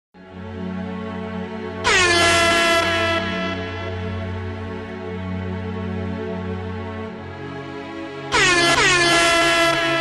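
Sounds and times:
intro music: 0:00.2 - 0:10.0
loud horn blast: 0:01.7 - 0:04.3, 0:08.3 - 0:10.0.

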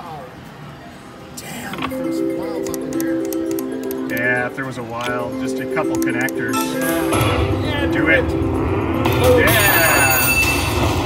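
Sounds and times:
slot machine electronic music: 0:01.8 - 0:11.0.

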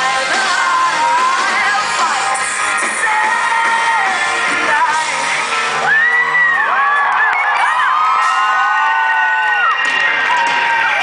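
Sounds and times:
band music: 0:00.0 - 0:11.0
audience cheering and whooping: 0:05.6 - 0:11.0.

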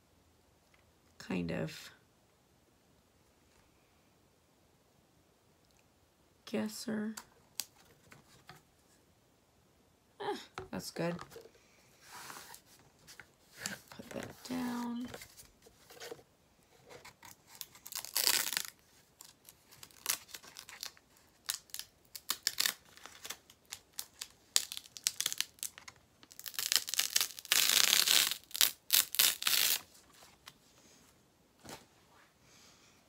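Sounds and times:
vinyl peeling rips: 0:17.2 - 0:29.9.

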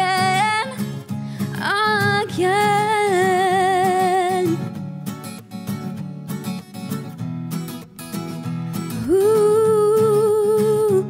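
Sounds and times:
acoustic guitar chords: 0:00.0 - 0:11.0.

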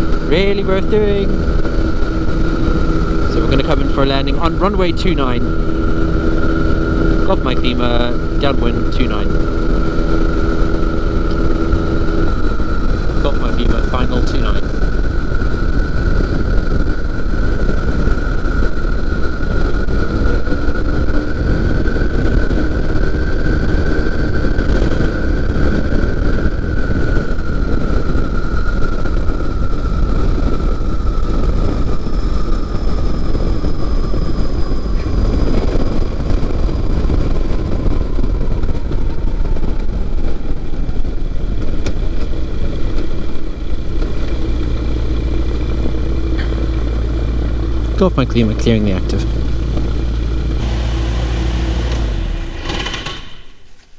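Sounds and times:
heavy wind noise on microphone: 0:00.0 - 0:53.9
light aircraft engine and propeller: 0:00.0 - 0:53.9.

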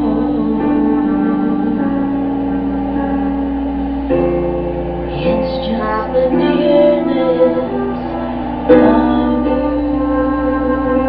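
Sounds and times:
backing track music: 0:00.0 - 0:11.0
trumpet holding a long note: 0:00.0 - 0:11.0.

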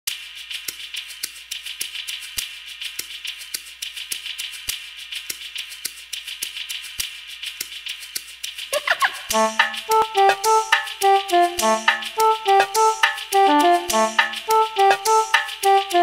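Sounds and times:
steady hiss: 0:00.1 - 0:16.0
clicking percussion beat: 0:00.5 - 0:16.0.

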